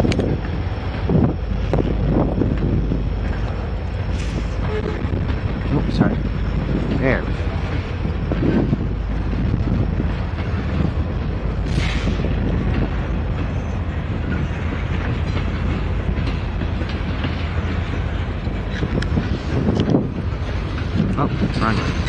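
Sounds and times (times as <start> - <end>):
diesel locomotive engine rumble: 0.0 - 22.0
train wheels clicking over track: 0.0 - 22.0.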